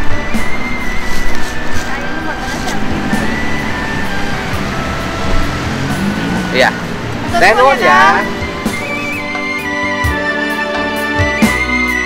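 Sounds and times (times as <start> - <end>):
background music with held notes: 0.0 - 12.0
road traffic rumble: 0.0 - 12.0.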